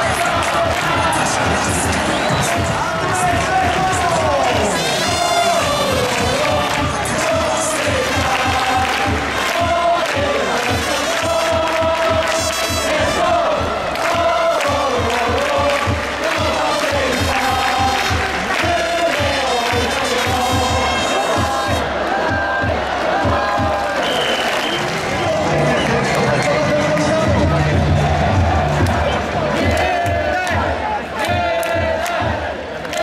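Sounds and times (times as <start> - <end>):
crowd chanting in unison: 0.0 - 33.0
steady drumbeat: 0.0 - 33.0.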